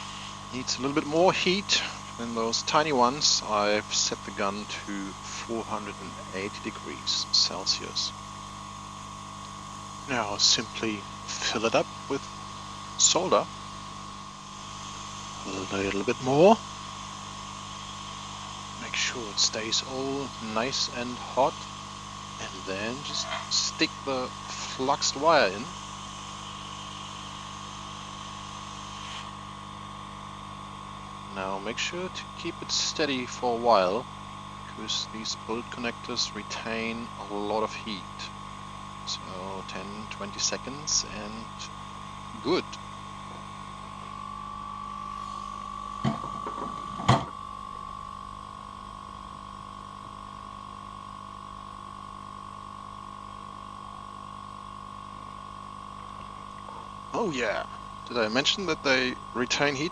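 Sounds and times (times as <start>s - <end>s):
hot air gun blowing: 0.0s - 2.2s
faint constant hum: 0.0s - 54.0s, 54.8s - 59.9s.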